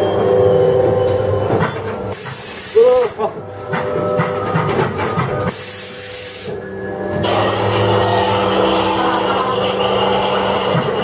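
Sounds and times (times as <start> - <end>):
droning background soundtrack: 0.0 - 11.0
air hissing spray: 2.1 - 3.2, 5.5 - 6.6.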